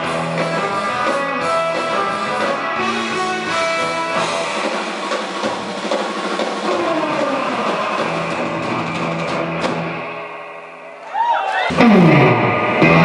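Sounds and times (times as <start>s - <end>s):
drum kit: 0.0s - 11.0s, 11.7s - 13.0s
bass guitar: 0.0s - 13.0s
electric guitar: 0.0s - 13.0s.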